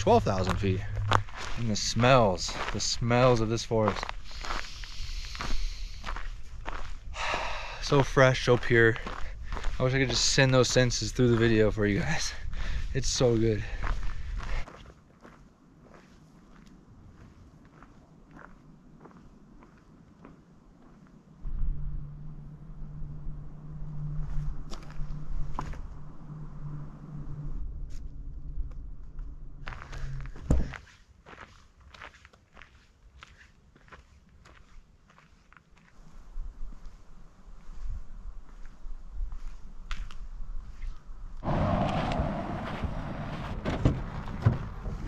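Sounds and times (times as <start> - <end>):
steady low hum: 0.0 - 14.6, 21.2 - 30.7, 41.4 - 45.0
footsteps on dirt trail: 0.0 - 21.2, 28.7 - 45.0.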